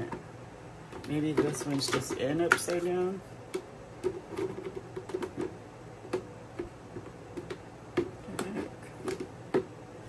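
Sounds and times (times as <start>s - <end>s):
plastic trays clicking and knocking: 0.9s - 9.7s.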